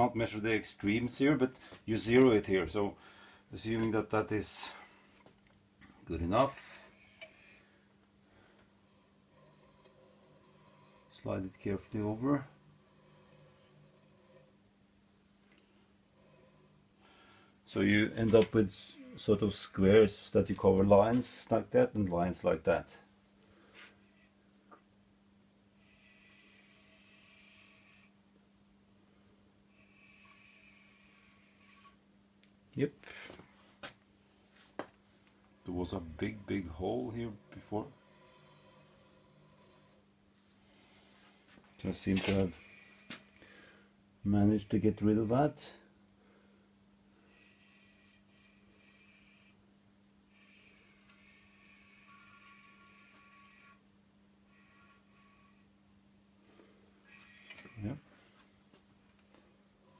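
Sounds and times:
faint steady hum: 0.0 - 59.9
faint breaths: 1.4 - 21.7, 22.9 - 24.9, 25.6 - 28.4, 29.0 - 32.1, 33.0 - 53.8.

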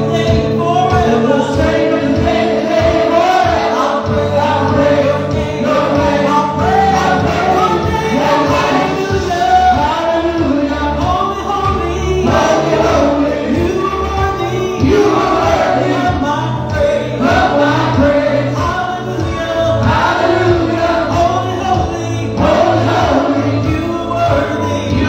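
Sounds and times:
group singing gospel song: 0.0 - 25.0
instrumental accompaniment: 0.0 - 25.0.

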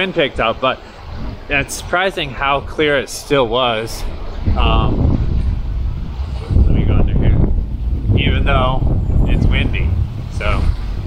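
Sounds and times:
man speaking: 0.0 - 0.8, 1.5 - 5.1, 6.4 - 7.4, 8.1 - 10.8
wind buffeting microphone: 0.0 - 11.0.

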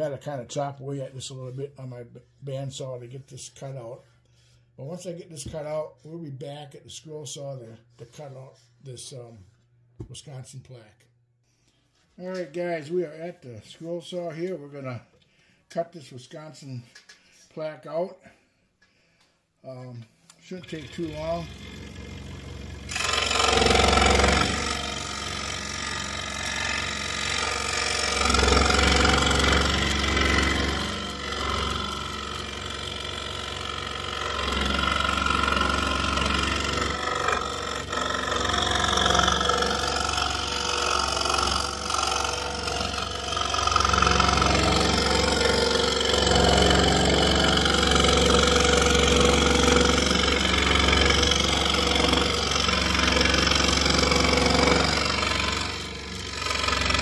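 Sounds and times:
scroll saw cutting plywood: 20.5 - 57.0.

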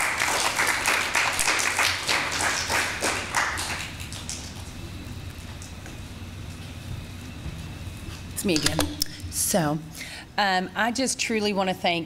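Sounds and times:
crowd applauding: 0.0 - 4.8.

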